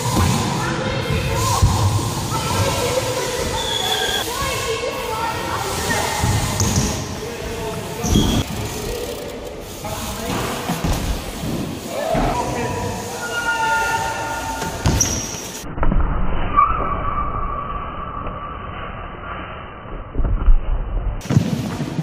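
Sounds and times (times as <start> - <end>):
bike tyres thudding on ramps: 0.0 - 13.2, 14.3 - 16.9
indistinct echoing voices: 0.0 - 15.6.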